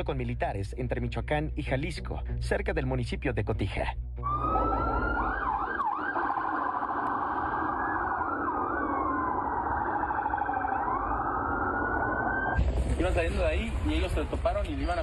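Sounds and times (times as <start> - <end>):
siren wailing and yelping: 4.2 - 12.6
continuous rough din: 4.3 - 15.0.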